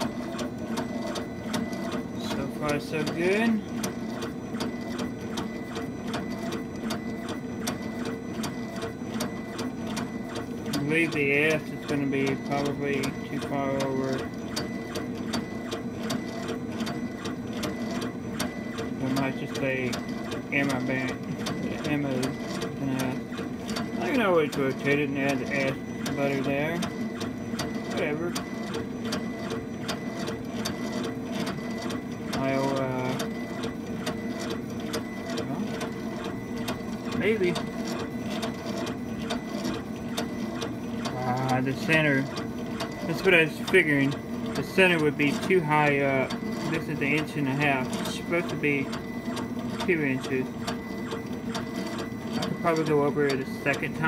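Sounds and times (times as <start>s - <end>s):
stepper motors whirring: 0.0s - 54.0s.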